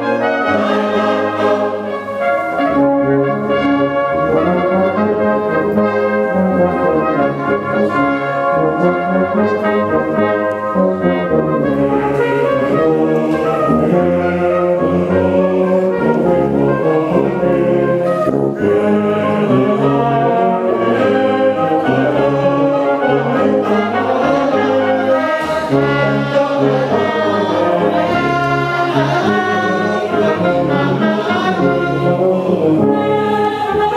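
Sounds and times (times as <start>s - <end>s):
brass band playing chords: 0.0s - 33.9s.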